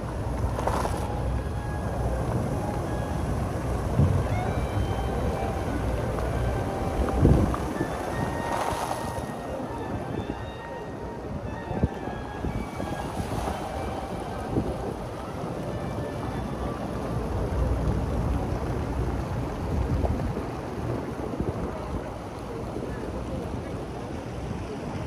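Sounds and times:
fountain water splashing: 0:00.0 - 0:25.0
people talking: 0:00.0 - 0:25.0
street traffic: 0:00.0 - 0:25.0
wind buffeting microphone: 0:00.0 - 0:25.0.

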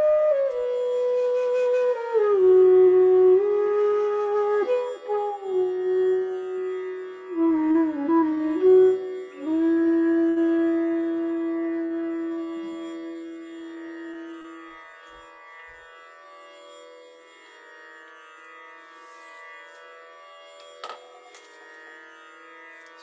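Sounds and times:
bamboo flute playing: 0:00.0 - 0:14.8.

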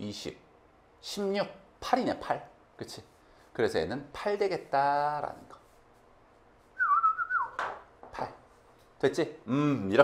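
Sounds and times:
brushing strokes on chalkboard: 0:02.8 - 0:06.8
whistled note: 0:06.8 - 0:07.6.

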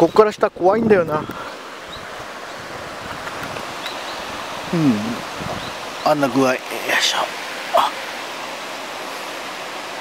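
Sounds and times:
stream rushing: 0:00.0 - 0:10.0
low voice murmur: 0:04.7 - 0:05.2.

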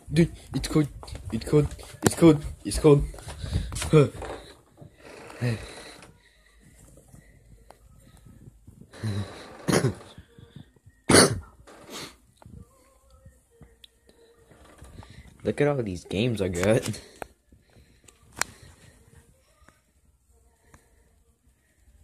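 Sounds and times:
non-word vocal sounds: 0:00.0 - 0:21.2
young person coughing: 0:09.6 - 0:10.1, 0:11.1 - 0:11.5.

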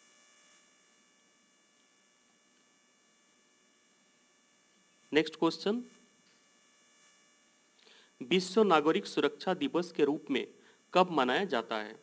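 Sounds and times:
faint background hiss and hum: 0:00.0 - 0:12.0.

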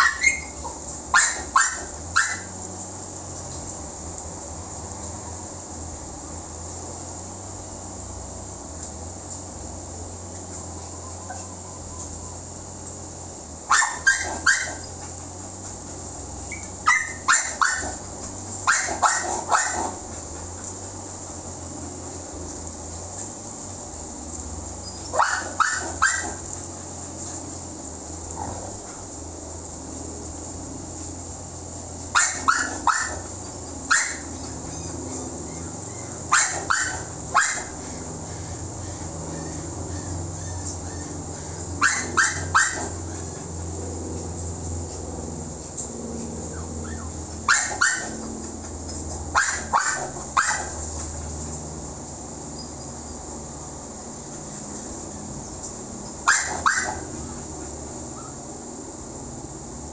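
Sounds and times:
dog barking: 0:00.0 - 0:02.6, 0:13.7 - 0:15.1, 0:16.6 - 0:18.0, 0:18.6 - 0:20.0, 0:25.1 - 0:26.4, 0:32.1 - 0:34.9, 0:35.6 - 0:38.0, 0:41.8 - 0:43.3, 0:46.8 - 0:48.3, 0:49.3 - 0:50.8, 0:56.2 - 0:57.4
steady low hum: 0:00.0 - 0:59.9.

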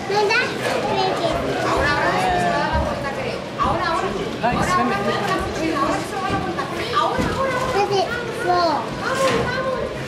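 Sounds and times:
children's voices chattering: 0:00.0 - 0:02.8, 0:04.8 - 0:10.0.

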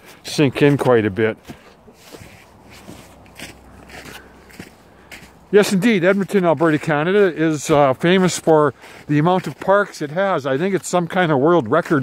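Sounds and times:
boots crunching in snow: 0:00.0 - 0:12.0.

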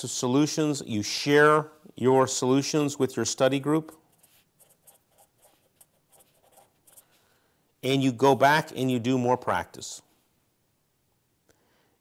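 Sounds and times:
marker scratching on paper: 0:03.8 - 0:07.2.

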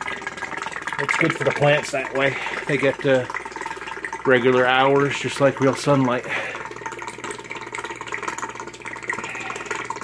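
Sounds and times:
air bubbling and splashing in water: 0:00.0 - 0:10.0
air pump hum: 0:00.0 - 0:10.0.

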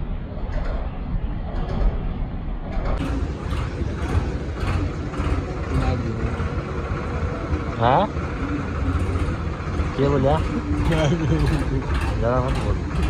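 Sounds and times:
diesel tractor engine running: 0:03.0 - 0:13.0.

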